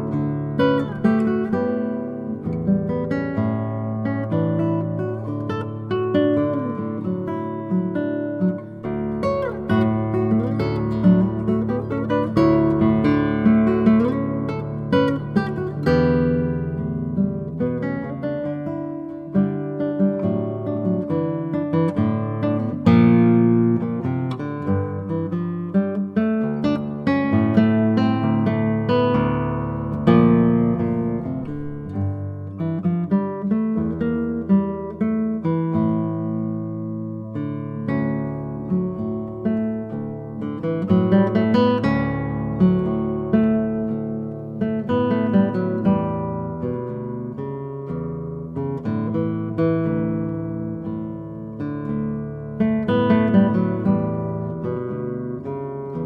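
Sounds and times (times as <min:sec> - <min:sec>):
fingerpicked classical guitar: 0:00.0 - 0:56.0.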